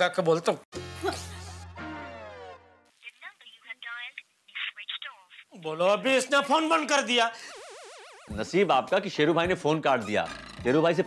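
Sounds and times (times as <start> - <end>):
tinny voice over telephone: 3.1 - 5.4.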